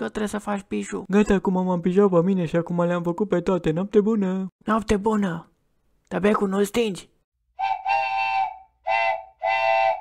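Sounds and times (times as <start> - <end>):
whistle toots: 7.6 - 10.0.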